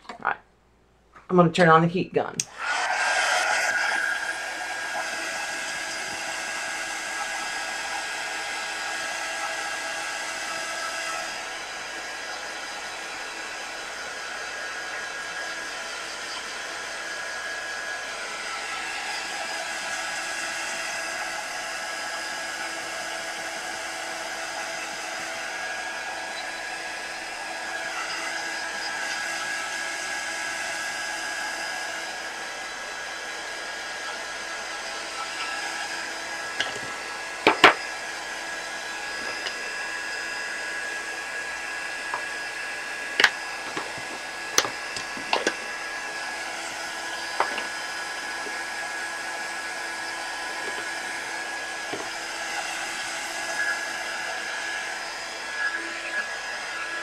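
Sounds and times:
fan whine: 0.0s - 57.0s
heat gun blowing: 2.4s - 57.0s.

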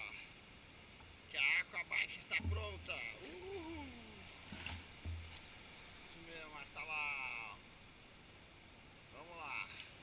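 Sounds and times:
person's voice: 1.4s - 4.3s
low rumbles: 2.3s - 6.6s.

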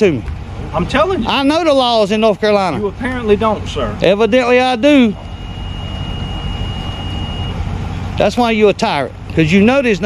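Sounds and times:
thin high-pitched tone: 4.2s - 7.6s.

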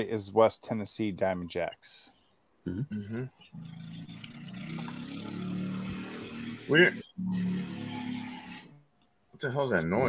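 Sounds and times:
motorbike engine passing: 3.6s - 8.9s.

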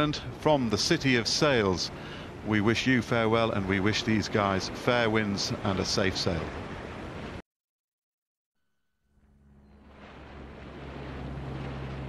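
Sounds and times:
low engine hum: 9.2s - 12.0s.

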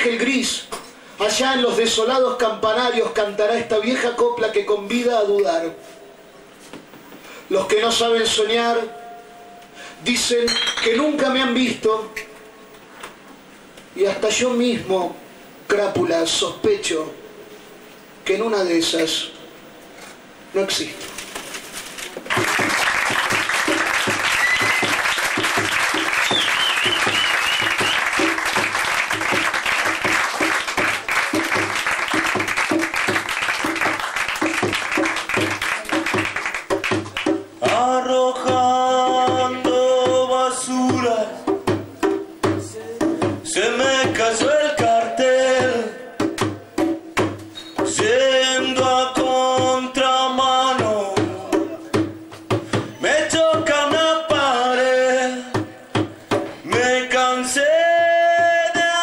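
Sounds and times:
fast drumming with cymbals: 22.6s - 50.0s.

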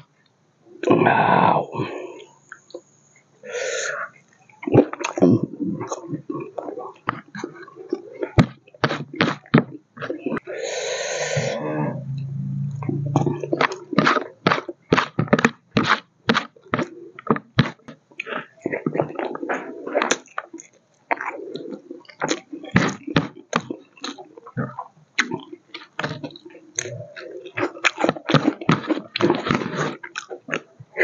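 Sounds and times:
breathy noise: 0.8s - 8.4s, 10.2s - 14.4s
chewing and lip-smacking: 4.6s - 10.4s, 13.5s - 31.0s
low hum: 11.2s - 14.2s.

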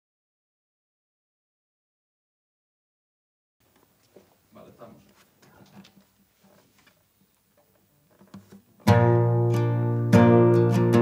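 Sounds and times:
faint room sounds: 3.6s - 10.8s
guitar chord strummed: 8.8s - 11.0s.

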